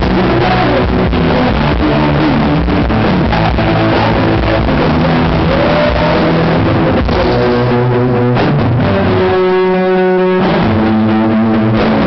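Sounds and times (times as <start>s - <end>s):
bass and drums: 0.0s - 12.0s
distorted electric guitar bending note: 0.0s - 12.0s.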